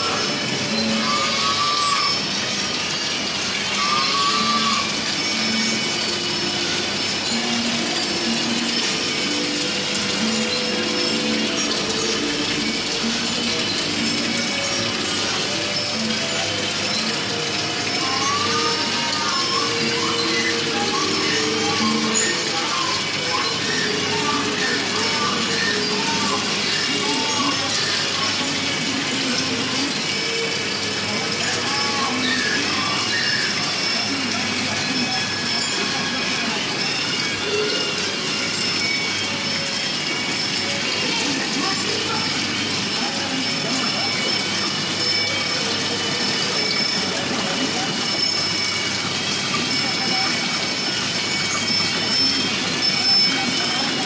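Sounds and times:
high-pitched tones: 0:00.0 - 0:54.0
indistinct voices talking: 0:00.0 - 0:54.0.

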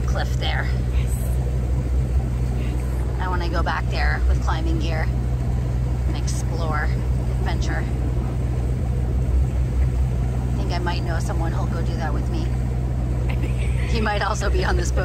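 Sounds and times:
boat engine droning: 0:00.0 - 0:15.0.

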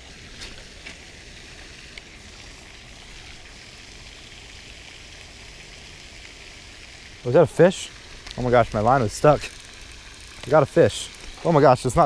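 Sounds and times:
fountain spray splashing: 0:00.0 - 0:12.0.

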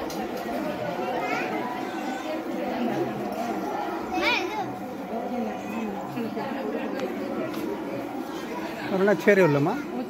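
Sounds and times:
many people talking: 0:00.0 - 0:10.0.

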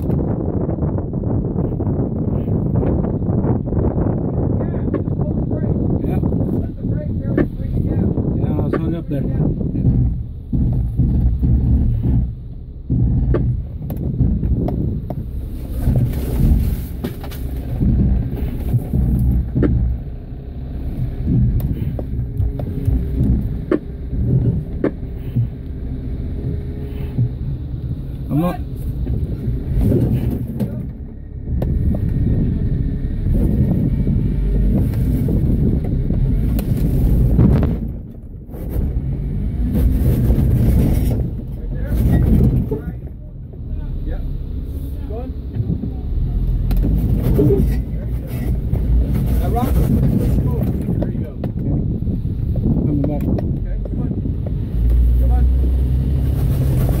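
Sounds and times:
off-road vehicle engine rumbling: 0:00.0 - 0:57.0.

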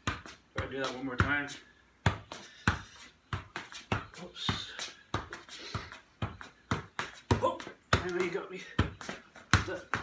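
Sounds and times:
ball bouncing on concrete: 0:00.0 - 0:10.0.

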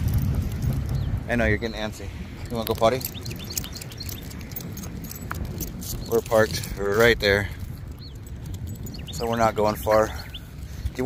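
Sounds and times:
wind rumbling on microphone: 0:00.0 - 0:11.0
bird chirps: 0:02.8 - 0:04.8, 0:07.7 - 0:11.0.

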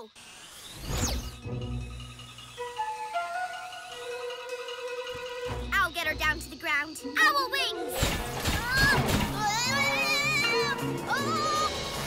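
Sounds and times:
background music with held notes: 0:01.4 - 0:12.0.

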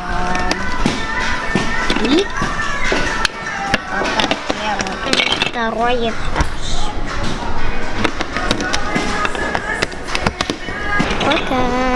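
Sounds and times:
background music: 0:00.0 - 0:11.9.

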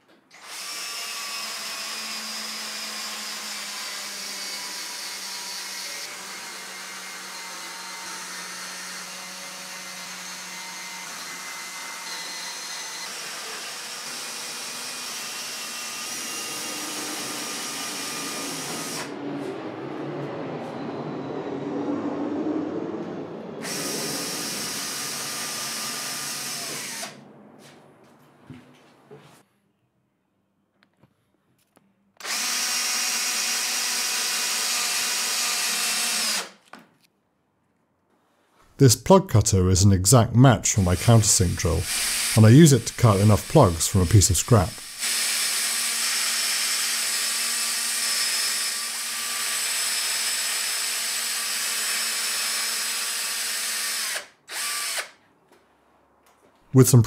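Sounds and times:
cordless drill whining: 0:00.0 - 0:19.1, 0:23.6 - 0:27.2, 0:32.2 - 0:36.7, 0:41.0 - 0:55.2
lower noisier drilling sound: 0:00.3 - 0:19.2, 0:23.6 - 0:27.2, 0:32.2 - 0:36.6, 0:40.8 - 0:55.2.

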